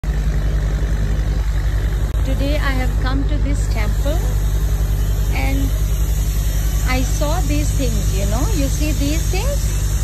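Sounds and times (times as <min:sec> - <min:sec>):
low engine rumble: 0:00.0 - 0:10.0.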